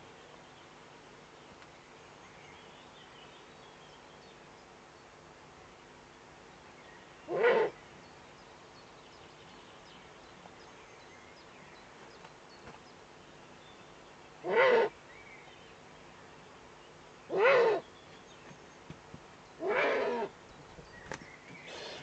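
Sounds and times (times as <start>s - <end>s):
owl calling: 7.3s - 7.8s, 14.4s - 15.0s, 17.3s - 17.8s, 19.6s - 20.3s, 21.6s - 22.0s.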